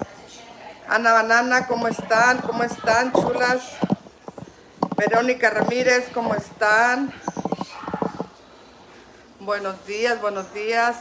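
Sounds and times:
woman making creaky pulsing sounds: 1.5s - 8.4s.

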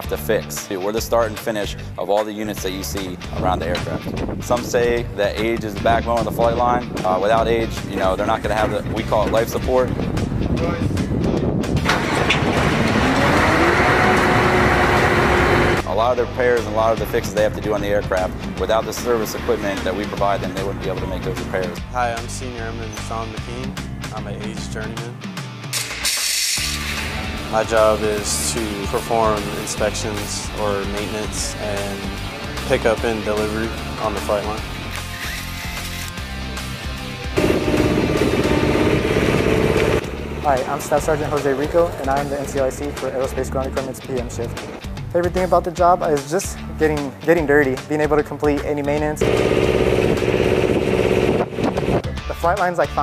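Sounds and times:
background music: 0.0s - 53.0s
ground support machine running: 37.4s - 40.4s, 49.2s - 52.0s.

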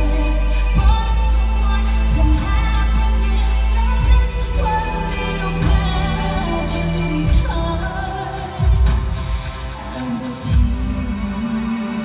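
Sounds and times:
music with a beat: 0.0s - 12.0s
woman singing into a microphone: 0.0s - 12.0s.

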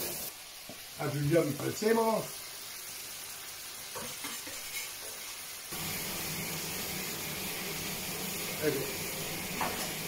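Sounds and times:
pan simmering and sizzling: 0.0s - 10.0s.

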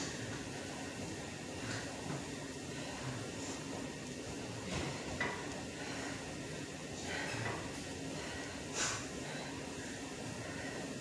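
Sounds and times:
low steady hum: 0.0s - 11.0s
sharp hissing breaths: 5.6s - 11.0s.

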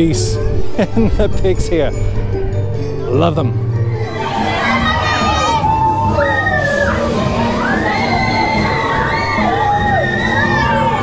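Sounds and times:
children screaming on a ride: 4.1s - 11.0s.

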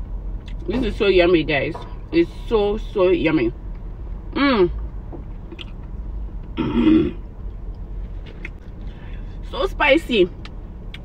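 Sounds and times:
woman clearing her throat: 6.6s - 7.2s.

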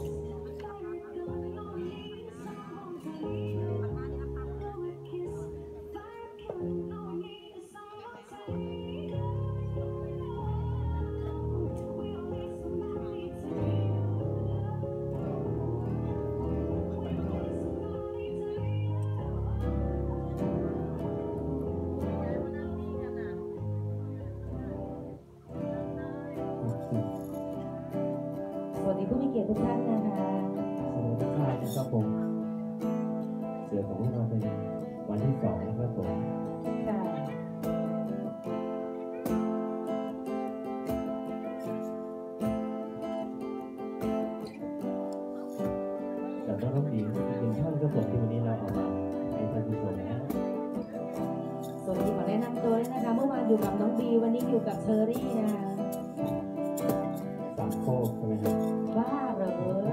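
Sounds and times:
acoustic guitar playing: 0.0s - 59.9s
person singing: 0.0s - 59.9s.

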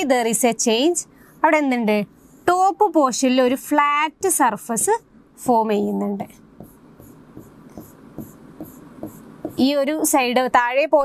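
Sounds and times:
stylus scratching on screen: 0.6s - 3.0s, 6.2s - 10.1s.

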